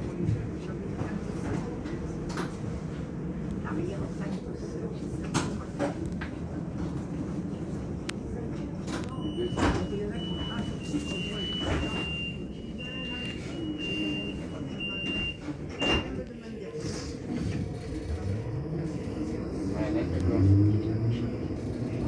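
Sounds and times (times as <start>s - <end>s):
tram door warning beeps: 8.8s - 16.7s.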